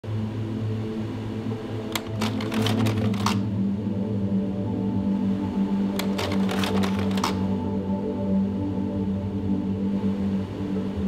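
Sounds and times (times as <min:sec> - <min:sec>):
typewriter key strikes: 0:02.0 - 0:03.5, 0:06.0 - 0:07.5.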